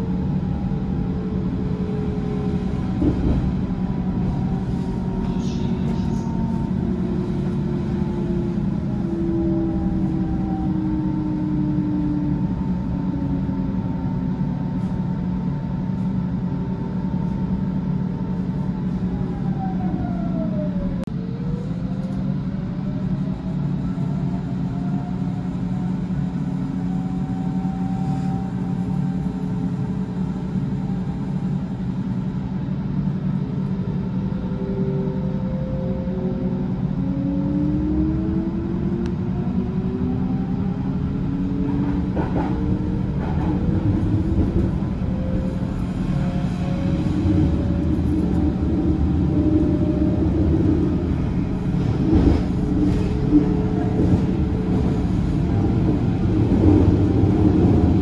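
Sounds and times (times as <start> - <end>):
electric train rumbling: 0.0 - 58.0.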